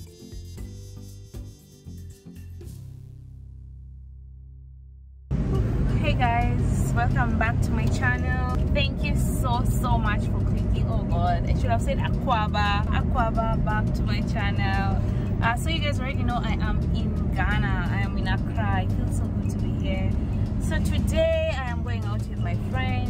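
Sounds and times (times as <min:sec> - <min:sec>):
car interior rumble: 0:05.3 - 0:23.0
woman talking: 0:05.5 - 0:23.0.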